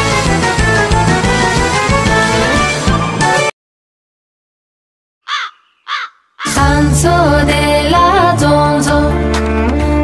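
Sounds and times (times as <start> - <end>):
crow cawing: 5.2 - 6.6.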